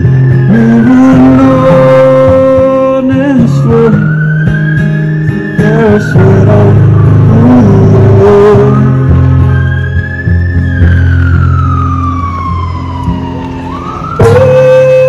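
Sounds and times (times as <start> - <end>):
acoustic guitar chords: 0.0 - 15.0.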